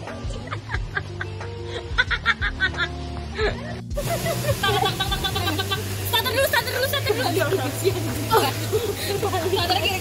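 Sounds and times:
woman talking excitedly: 0:05.3 - 0:10.0.

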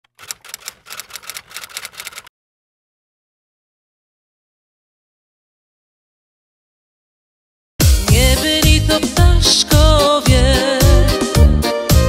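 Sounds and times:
typewriter key clacks: 0:00.0 - 0:02.3.

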